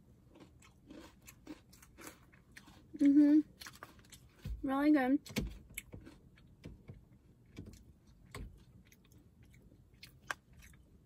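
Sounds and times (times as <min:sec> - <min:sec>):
soft crunchy chewing: 0:00.0 - 0:11.0.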